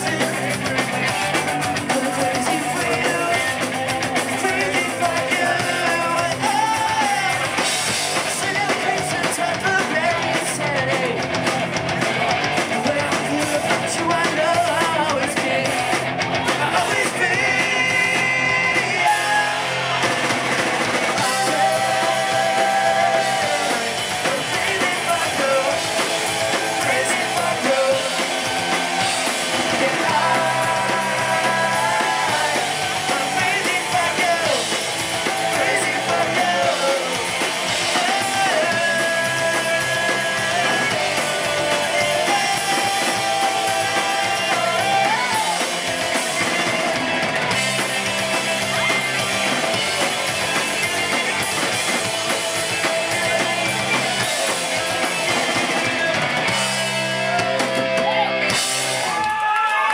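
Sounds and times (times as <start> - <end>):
punk band playing live: 0.0 - 59.9.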